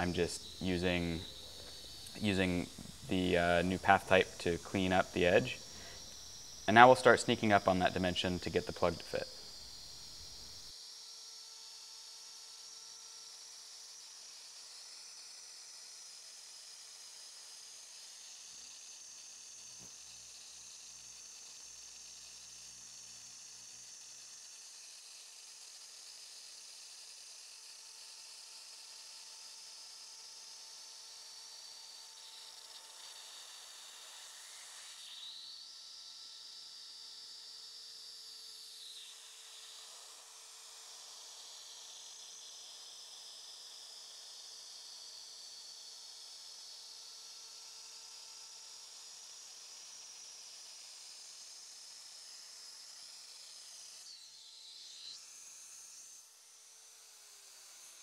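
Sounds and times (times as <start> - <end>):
high-pitched router whine: 0.0 - 58.0
router cutting wood: 0.0 - 58.0.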